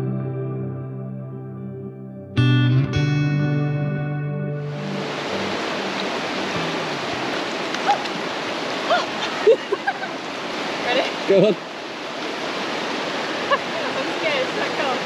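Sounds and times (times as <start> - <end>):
guitar music: 0.0 - 7.5
river rushing: 4.6 - 15.0.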